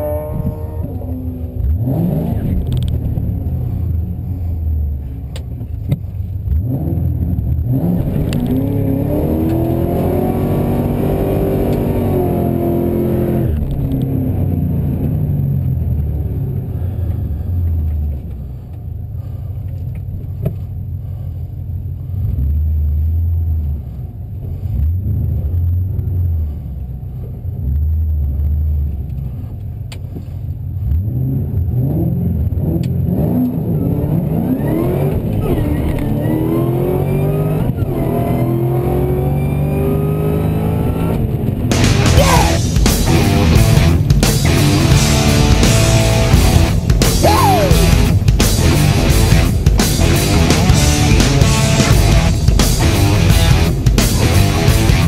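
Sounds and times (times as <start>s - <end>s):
car accelerating through gears: 0.0s - 4.2s, 6.4s - 18.0s, 30.7s - 55.0s
car engine revving: 0.0s - 55.0s
car engine idling unevenly: 2.6s - 7.7s, 13.6s - 31.7s, 41.2s - 55.0s.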